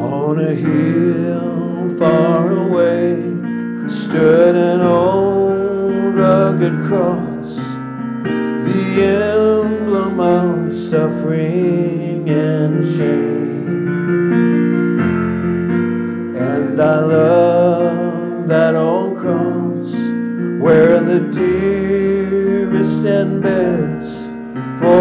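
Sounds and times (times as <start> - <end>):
man singing a hymn: 0.0 - 7.8, 8.5 - 13.9, 16.3 - 25.0
electronic keyboard piano chords: 0.0 - 25.0.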